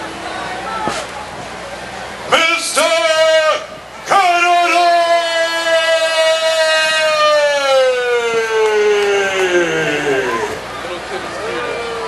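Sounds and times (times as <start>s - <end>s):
man shouting through microphone: 2.3s - 10.6s.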